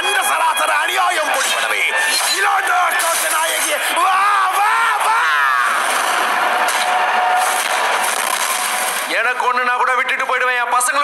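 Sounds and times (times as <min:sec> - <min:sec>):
dense noisy sound effects: 0:00.0 - 0:09.8
man yelling: 0:02.4 - 0:05.6.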